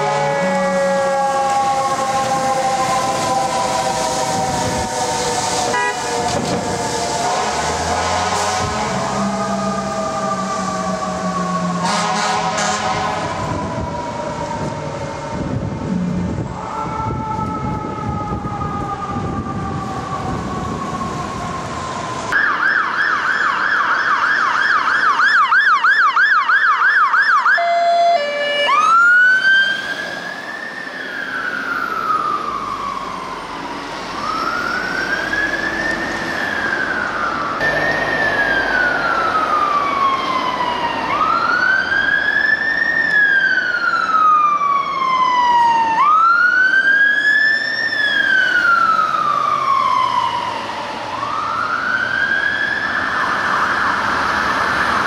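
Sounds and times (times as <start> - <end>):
siren falling in pitch: 0.0 - 21.4, 22.3 - 55.0
fire truck engine rumble: 0.0 - 55.0
electronic siren yelping and wailing: 22.3 - 55.0.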